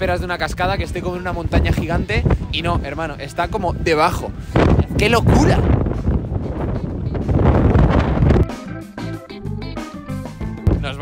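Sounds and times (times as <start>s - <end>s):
wind buffeting microphone: 0.0s - 8.8s
music with held notes and drums: 5.8s - 11.0s.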